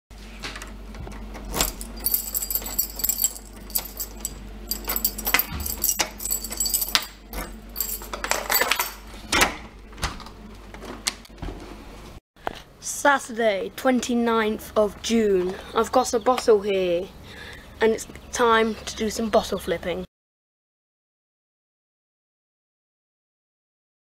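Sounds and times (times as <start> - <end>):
keys jangling: 1.5 - 9.1.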